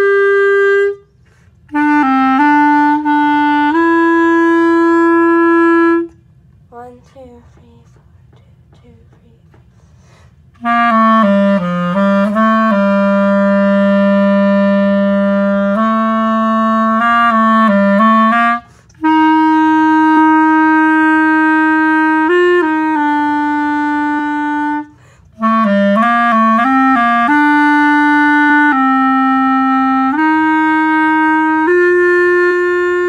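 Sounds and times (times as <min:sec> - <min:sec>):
clarinet long note: 0:00.0 - 0:06.2, 0:10.6 - 0:33.0.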